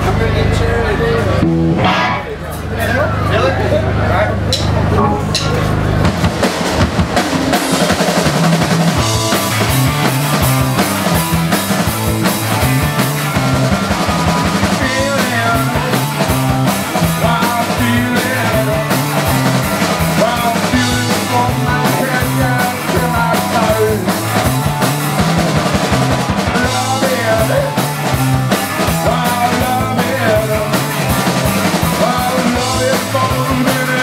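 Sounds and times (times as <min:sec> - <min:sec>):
rock band playing live: 0:00.0 - 0:34.0
drum kit: 0:01.4 - 0:02.7, 0:04.4 - 0:34.0.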